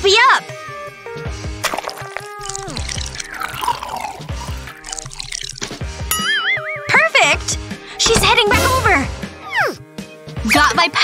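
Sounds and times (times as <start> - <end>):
background music: 0.0 - 11.0
liquid squirting and dripping: 1.6 - 6.0.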